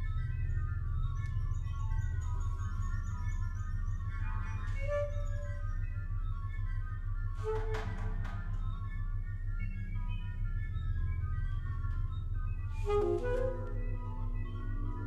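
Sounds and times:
sustained low drone: 0.0 - 15.0.

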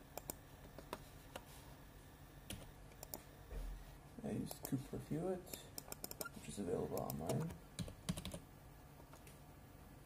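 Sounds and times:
computer keystrokes: 5.8 - 6.3, 7.0 - 8.4.

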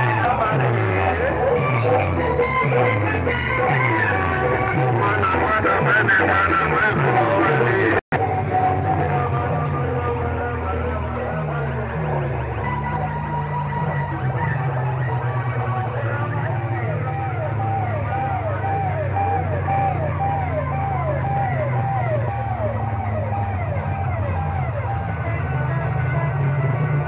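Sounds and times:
falling siren-like tone: 12.1 - 27.0.

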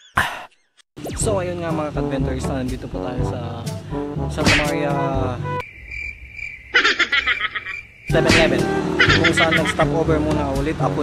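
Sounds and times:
man speaking: 1.1 - 5.6, 8.1 - 11.0
crickets chirping: 5.6 - 9.8.

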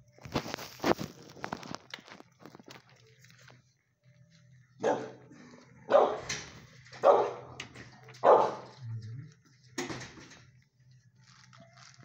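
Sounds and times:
dog barking: 4.8 - 5.3, 5.9 - 6.4, 7.0 - 7.6, 8.2 - 8.8.

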